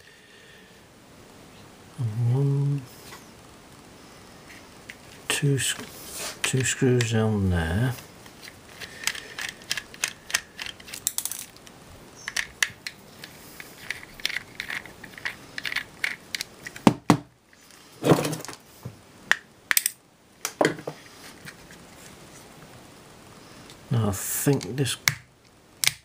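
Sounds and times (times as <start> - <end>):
screwdriver clicking and scraping: 8.4 - 11.6, 12.2 - 16.8.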